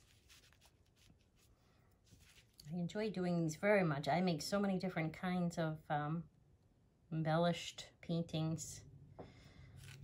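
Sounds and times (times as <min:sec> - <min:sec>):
faint soft rustles: 0:00.0 - 0:02.8.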